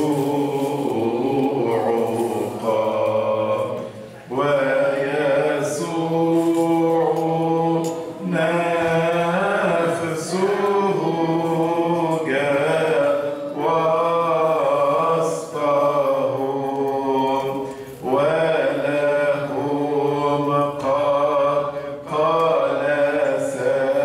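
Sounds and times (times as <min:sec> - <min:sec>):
man chanting a hymn: 0:00.0 - 0:24.0.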